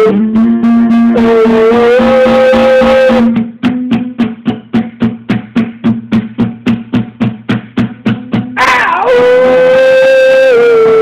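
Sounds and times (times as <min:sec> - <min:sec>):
guitar held melody note: 0:00.0 - 0:09.7
rhythmic guitar strumming: 0:00.0 - 0:11.0.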